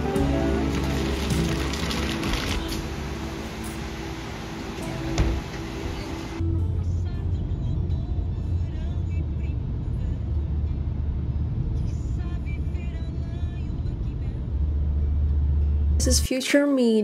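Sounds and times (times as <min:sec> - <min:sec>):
car engine and road drone: 0:00.0 - 0:16.3.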